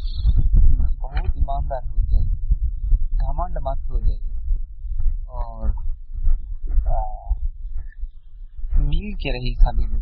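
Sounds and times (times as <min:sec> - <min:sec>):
steady low rumble: 0:00.0 - 0:10.0
man speaking: 0:03.2 - 0:04.2, 0:08.7 - 0:10.0.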